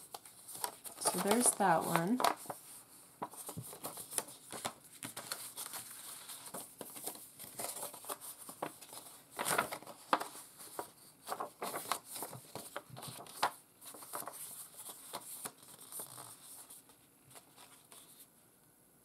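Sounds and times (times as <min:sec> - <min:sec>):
paper envelopes rustling: 0:00.0 - 0:18.3.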